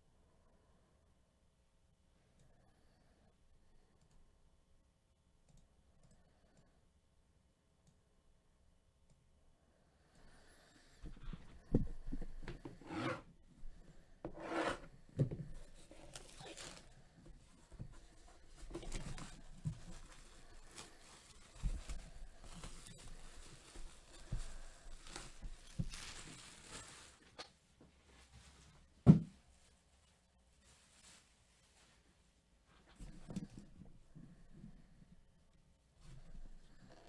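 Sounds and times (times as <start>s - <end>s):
packaging rustling and scraping: 15.5s - 17.0s, 17.7s - 27.5s.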